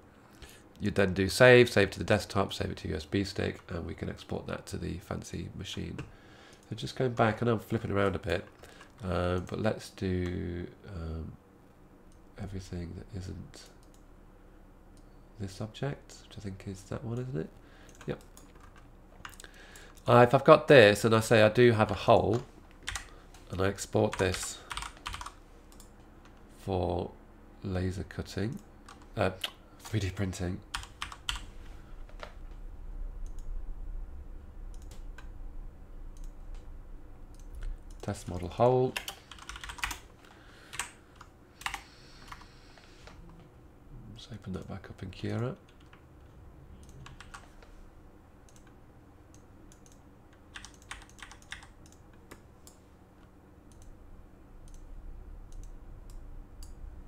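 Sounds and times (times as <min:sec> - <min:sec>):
low steady hum: 0:00.0 - 0:57.0
computer keyboard keys clicking: 0:17.9 - 0:20.1, 0:22.3 - 0:23.1, 0:24.1 - 0:26.4, 0:30.7 - 0:31.5, 0:34.7 - 0:35.3, 0:39.0 - 0:40.0, 0:40.7 - 0:42.5, 0:46.8 - 0:47.5, 0:48.5 - 0:52.8.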